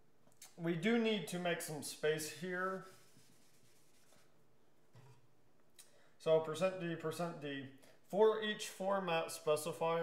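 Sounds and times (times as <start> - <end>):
marker strokes on whiteboard: 2.6 - 4.4.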